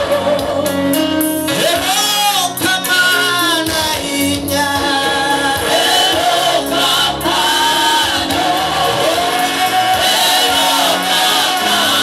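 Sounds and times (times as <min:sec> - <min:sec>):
group singing gospel song: 0:00.0 - 0:12.0
musical backing: 0:00.0 - 0:12.0.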